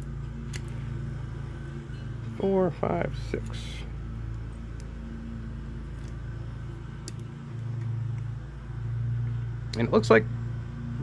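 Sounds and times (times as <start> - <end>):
electronics humming: 0.0 - 11.0.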